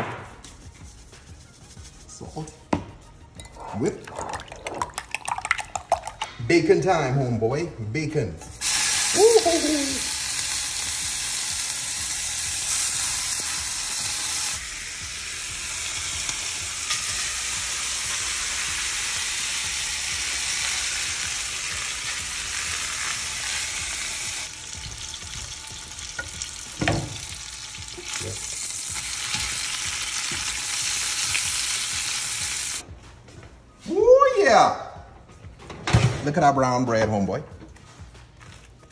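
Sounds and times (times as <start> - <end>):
food sizzling in a frying pan: 8.5 - 32.8.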